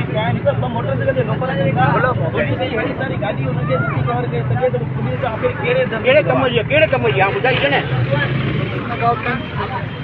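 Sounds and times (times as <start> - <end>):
men talking: 0.0 - 10.0.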